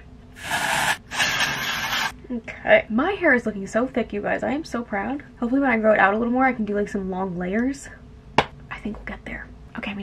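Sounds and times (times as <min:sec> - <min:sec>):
aerosol spray hissing: 0:00.4 - 0:02.1.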